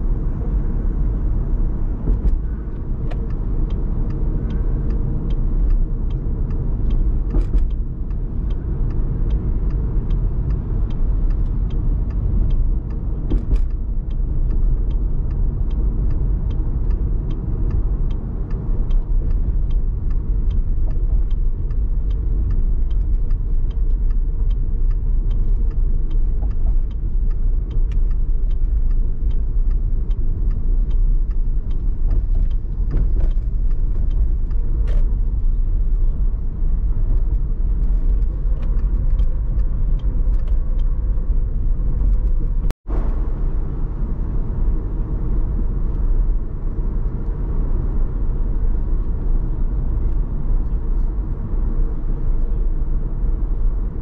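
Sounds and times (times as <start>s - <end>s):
road and tyre noise: 0.0s - 54.0s
light regular ticking: 0.4s - 42.8s.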